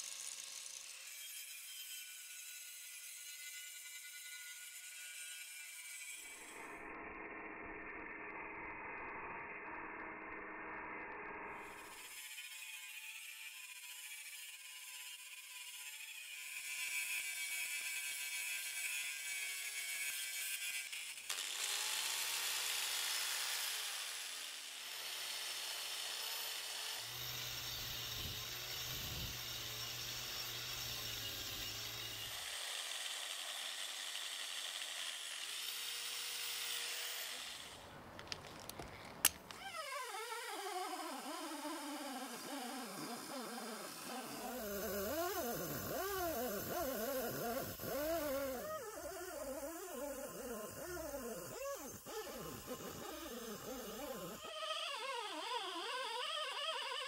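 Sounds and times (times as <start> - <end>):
angle grinder grinding metal: 0.0 - 7.8, 11.6 - 57.0
rotary tool with wire wheel: 0.0 - 57.0.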